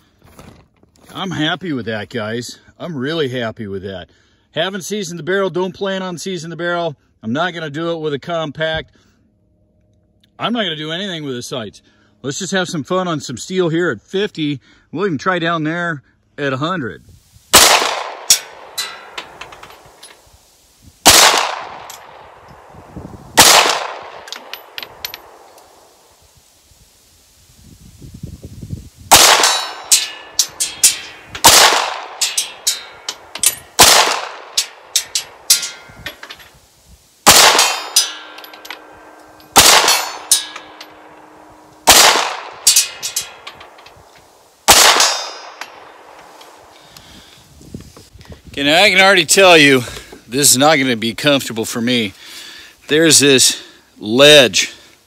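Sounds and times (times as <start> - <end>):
pistol shots: 17.6 - 18.8, 21.0 - 22.2, 23.4 - 25.8, 29.1 - 32.8, 33.8 - 34.8, 37.2 - 38.2, 39.0 - 40.6, 41.8 - 43.0, 44.7 - 46.0
faint clang of steel targets: 17.8 - 20.3, 29.1 - 36.6, 37.3 - 44.0, 44.7 - 46.0.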